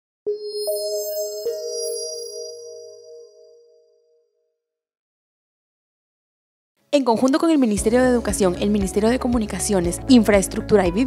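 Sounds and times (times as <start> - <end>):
bell-like chime notes: 0.3 - 4.5.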